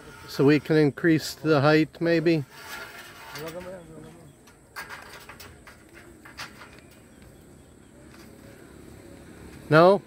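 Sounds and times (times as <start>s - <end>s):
metal ladder clicks and knocks: 4.5s - 7.0s.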